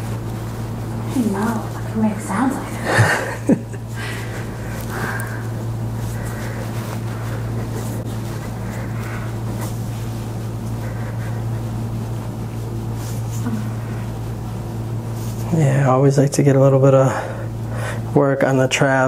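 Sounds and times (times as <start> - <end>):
low room hum: 0.0 - 19.0.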